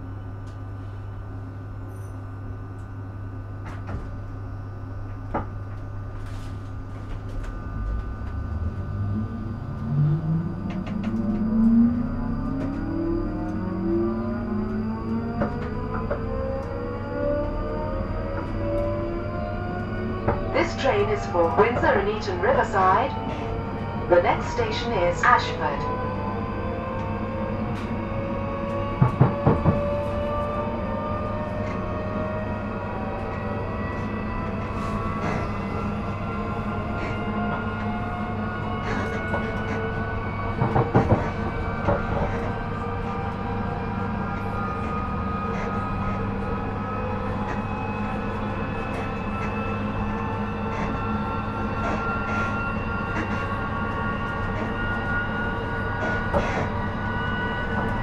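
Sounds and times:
train running rumble: 0:00.0 - 0:58.0
traction motor whine: 0:03.3 - 0:58.0.

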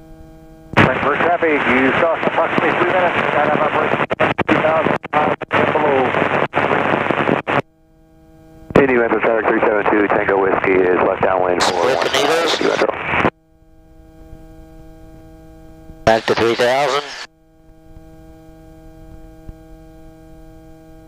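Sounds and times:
steady hum: 0:00.0 - 0:21.0
radio voice over intercom: 0:00.8 - 0:06.8, 0:08.7 - 0:13.3, 0:16.1 - 0:17.3.

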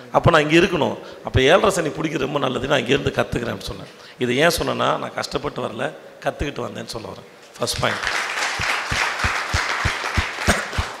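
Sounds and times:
crowd applauding: 0:07.8 - 0:11.0
deep drum beat: 0:09.2 - 0:11.0.

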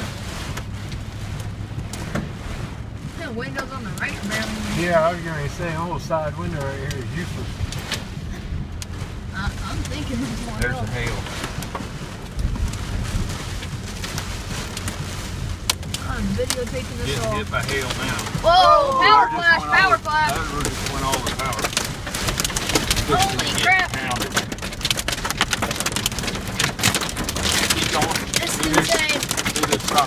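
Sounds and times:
hail pelting a vehicle roof: 0:00.0 - 0:30.0
low road rumble: 0:00.0 - 0:30.0
steady rain: 0:00.0 - 0:30.0.

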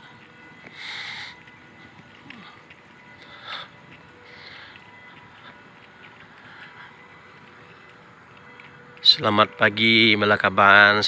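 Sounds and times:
footsteps on brick paving: 0:00.0 - 0:11.0.

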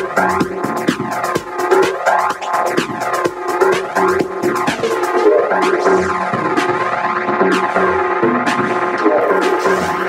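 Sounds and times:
techno music with synthesizer sweeps: 0:00.0 - 0:10.0.

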